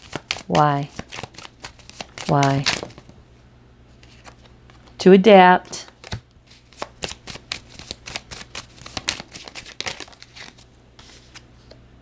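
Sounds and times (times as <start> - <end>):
cards being shuffled: 0.0 - 3.1, 4.0 - 5.0, 5.8 - 11.8.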